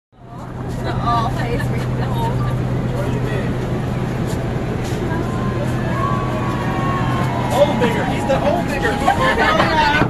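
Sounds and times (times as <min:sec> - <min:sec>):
bus engine idling: 0:00.2 - 0:10.0
voices calling out: 0:00.2 - 0:10.0.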